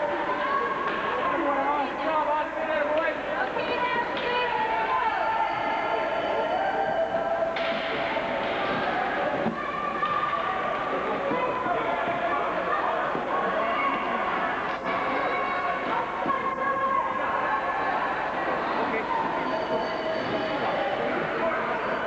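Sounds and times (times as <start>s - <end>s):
spectator chatter echoing: 0.0s - 22.0s.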